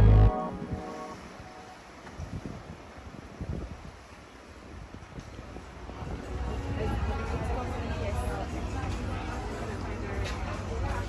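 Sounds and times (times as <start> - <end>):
background music: 0.0 - 1.7
wind gusting against microphone: 0.4 - 8.2.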